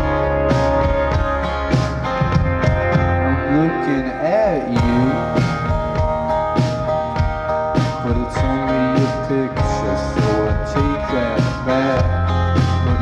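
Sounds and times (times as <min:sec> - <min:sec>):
acoustic guitar: 0:00.0 - 0:13.0
drum kit beat: 0:00.0 - 0:13.0.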